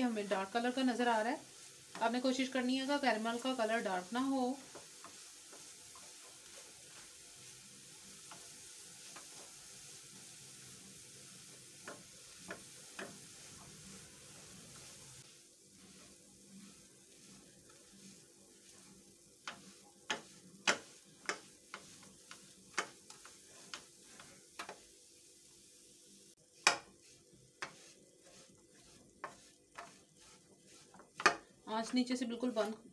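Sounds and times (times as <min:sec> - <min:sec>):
spatula scraping frying pan: 0:00.0 - 0:25.0, 0:26.5 - 0:32.9
faint steady hiss: 0:00.0 - 0:32.9
spatula tapping against pan: 0:11.8 - 0:13.7, 0:19.4 - 0:23.9, 0:26.6 - 0:26.9, 0:31.0 - 0:32.0.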